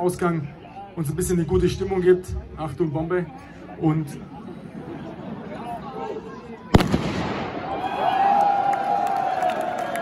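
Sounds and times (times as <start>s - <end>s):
loud firecracker bang: 6.8s - 7.9s
crowd cheering and shouting: 7.5s - 10.0s.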